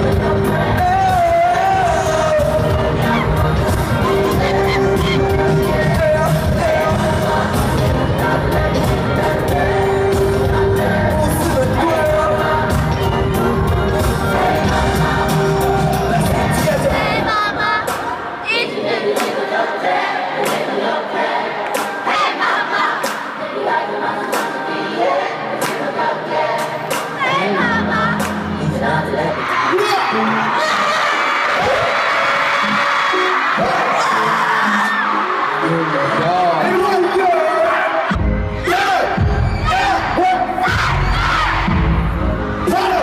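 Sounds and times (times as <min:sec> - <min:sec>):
crowd noise: 0:00.0 - 0:43.0
crowd singing together: 0:00.0 - 0:43.0
live pop music with heavy beat: 0:00.0 - 0:43.0.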